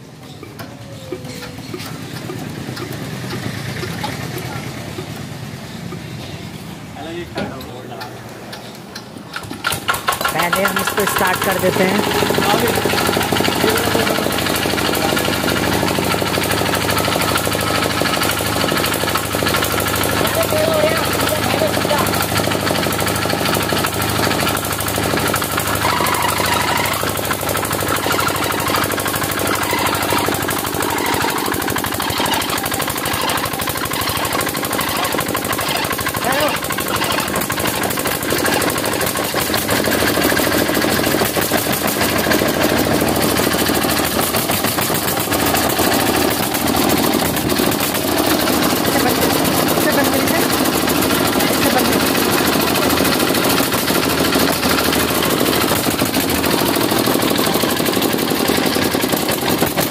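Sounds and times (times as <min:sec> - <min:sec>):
small diesel engine knocking: 0:00.1 - 0:06.4, 0:07.4 - 0:59.9.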